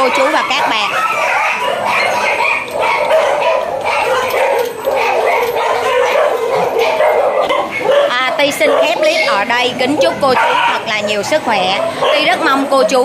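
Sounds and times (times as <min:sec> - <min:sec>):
dogs barking: 0:00.0 - 0:13.0.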